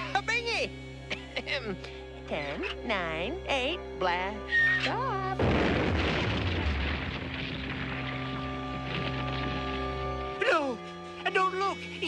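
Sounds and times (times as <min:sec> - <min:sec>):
background music held chords: 0:00.0 - 0:12.0
low explosion rumble: 0:05.4 - 0:09.7
scattering debris: 0:05.4 - 0:10.2.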